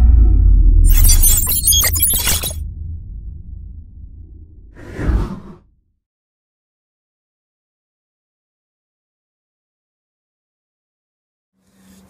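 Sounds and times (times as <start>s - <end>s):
deep bass rumble: 0.0s - 5.9s
glassy shattering crackle: 0.9s - 2.6s.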